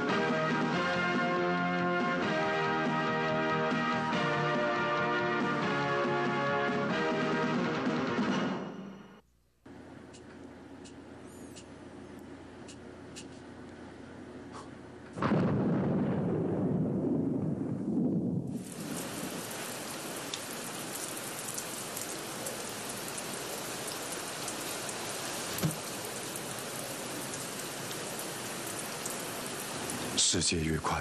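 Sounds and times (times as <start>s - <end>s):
thunder rumble: 15.1s - 22.2s
steady rainfall: 18.4s - 31.0s.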